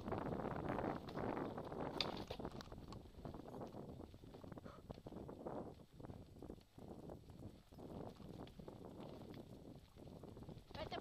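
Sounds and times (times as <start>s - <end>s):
wheels rumbling on dirt trail: 0.0s - 11.0s.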